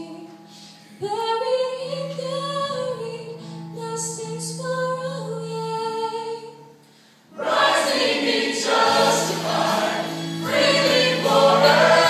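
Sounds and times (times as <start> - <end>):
church choir singing: 7.3 - 12.0.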